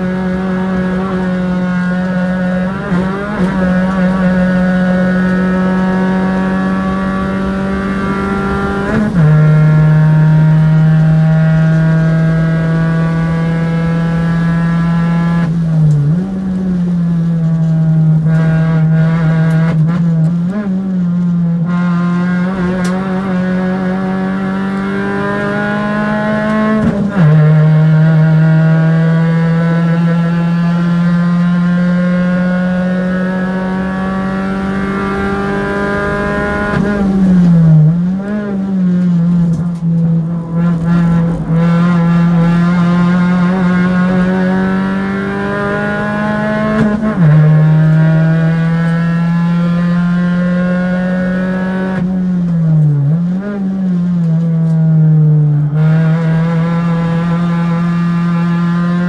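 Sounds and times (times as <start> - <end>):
race car engine running hard: 0.0 - 59.0.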